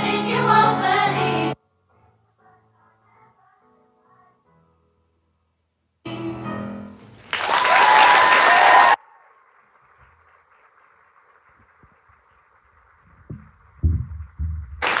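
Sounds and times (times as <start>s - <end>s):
choir singing: 0.0s - 4.4s
audience applause: 7.3s - 13.3s, 14.8s - 15.0s
low thumps: 13.1s - 15.0s.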